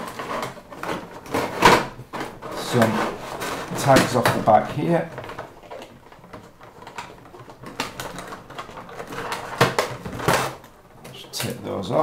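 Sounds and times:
plastic packaging rustling: 0.0s - 12.0s.

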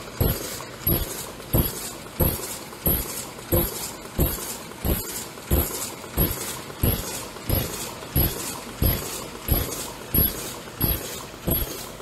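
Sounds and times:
machine thumping: 0.0s - 12.0s.

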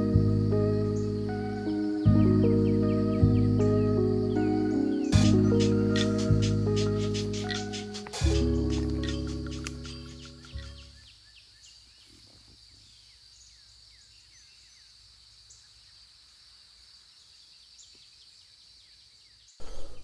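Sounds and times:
music: 0.0s - 11.0s
bird chirps: 0.8s - 14.9s, 17.3s - 20.0s.

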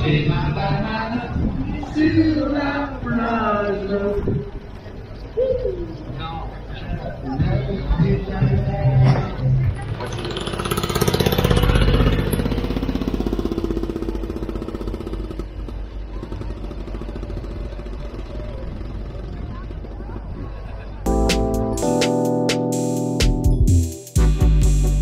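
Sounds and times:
two-stroke engine popping: 9.6s - 20.2s.

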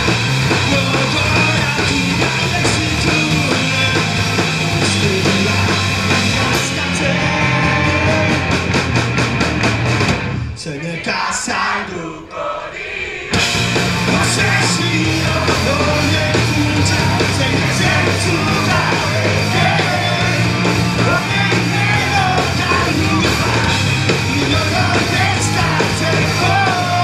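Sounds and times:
loud live rock band: 0.0s - 12.2s, 13.0s - 27.0s.

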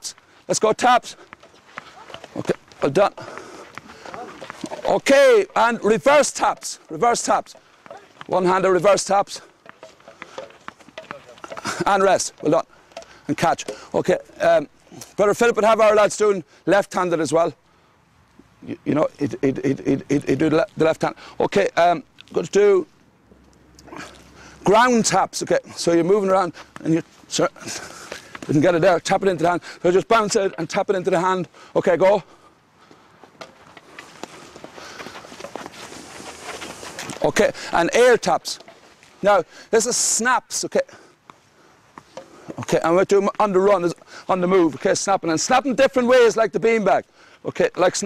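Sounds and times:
man speaking: 0.0s - 1.2s, 2.3s - 3.4s, 4.1s - 9.5s, 11.0s - 12.7s, 13.3s - 17.6s, 18.6s - 22.9s, 24.6s - 27.9s, 28.5s - 32.3s, 37.2s - 38.6s, 39.2s - 40.9s, 42.6s - 48.0s
hurleys tapping balls: 0.0s - 15.1s, 27.7s - 31.5s, 33.3s - 39.1s, 41.2s - 44.1s
footsteps shuffling: 0.0s - 15.7s, 25.6s - 40.2s
sticks tapping balls: 3.7s - 8.6s, 9.5s - 13.9s
ball bouncing off ground: 9.6s - 11.6s.

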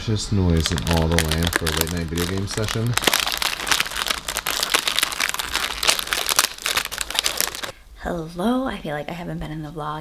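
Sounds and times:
plastic wrapper crinkling: 0.5s - 7.7s.

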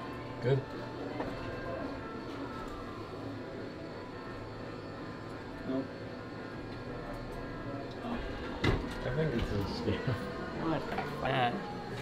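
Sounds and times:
steady low background hum: 0.0s - 12.0s.

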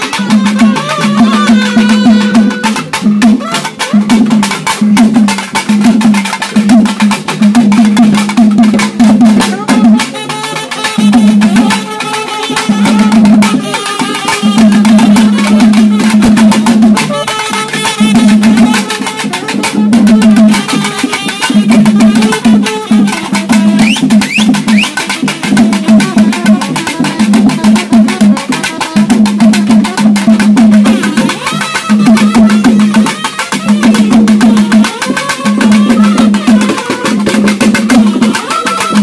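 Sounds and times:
reed pipes playing melody: 0.0s - 4.6s, 9.4s - 39.0s
fast drum beating: 0.0s - 39.0s.

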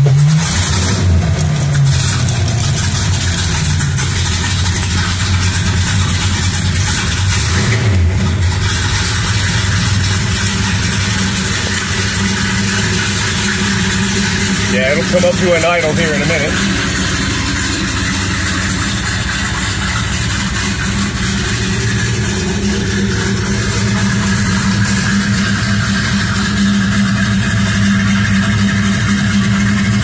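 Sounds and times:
car engine fast idle: 0.0s - 30.0s.

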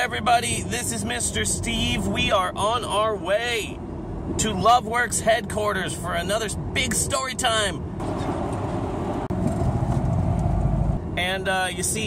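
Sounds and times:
road and engine noise inside car: 0.0s - 12.0s.

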